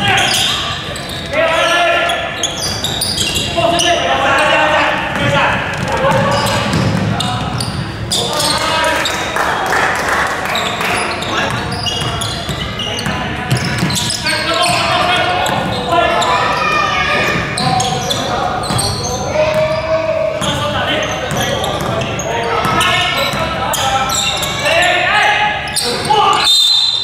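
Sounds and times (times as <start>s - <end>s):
basketball bouncing on wooden floor: 5.1s - 7.6s, 11.4s - 15.8s.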